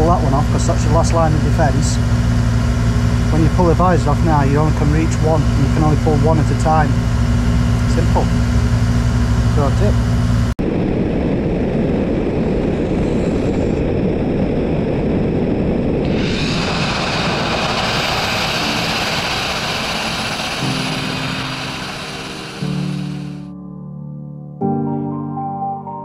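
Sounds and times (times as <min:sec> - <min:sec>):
grit-blasting nozzle hissing: 0:00.1 - 0:10.0, 0:16.0 - 0:23.5
music: 0:20.5 - 0:26.0.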